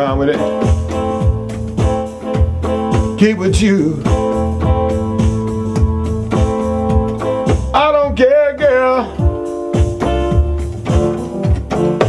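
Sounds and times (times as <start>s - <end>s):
held chords: 0.0s - 12.0s
drum machine kick: 0.1s - 12.0s
man singing: 3.1s - 4.4s, 7.7s - 9.3s.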